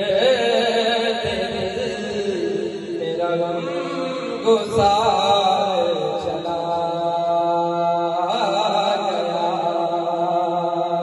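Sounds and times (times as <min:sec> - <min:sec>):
man singing into a microphone: 0:00.0 - 0:11.0.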